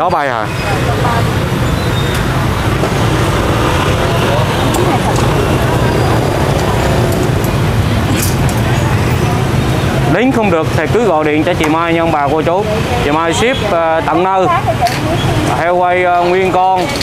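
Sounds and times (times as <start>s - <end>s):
indistinct voices: 0.0s - 17.0s
road traffic hum: 0.0s - 17.0s.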